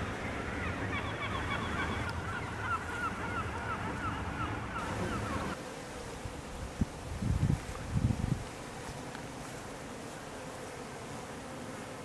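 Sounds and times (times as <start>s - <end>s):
buzzing of flying insects: 0.0s - 12.0s
background hiss: 2.0s - 12.0s.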